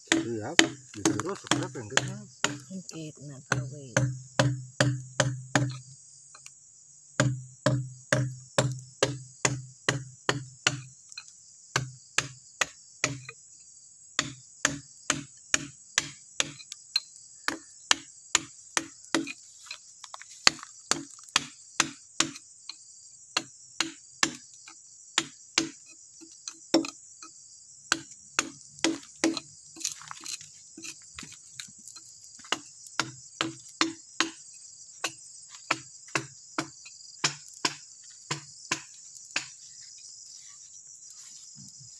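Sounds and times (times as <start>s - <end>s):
high insect buzz: 0.0s - 41.9s
hammer striking a chisel: 0.1s - 2.7s, 3.5s - 5.8s, 7.2s - 10.9s, 11.8s - 13.3s, 14.2s - 19.4s, 20.4s - 22.4s, 23.4s - 24.4s, 25.2s - 25.8s, 26.7s - 27.0s, 27.9s - 29.5s, 32.4s - 34.4s, 35.0s - 39.5s.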